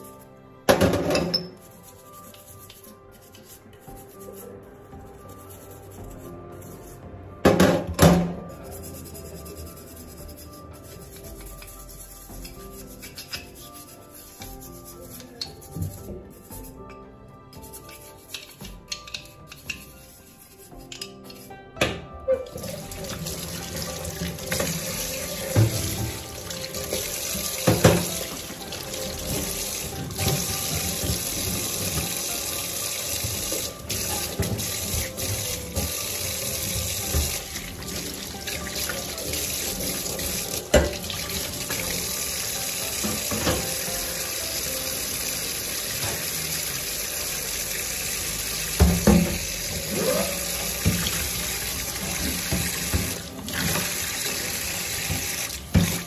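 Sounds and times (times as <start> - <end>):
scrubbing metal parts: 8.4 - 21.6, 22.5 - 44.4
tap running into a steel sink: 21.8 - 32.3, 33.2 - 41.9, 42.8 - 44.0, 48.7 - 49.6, 50.8 - 56.0.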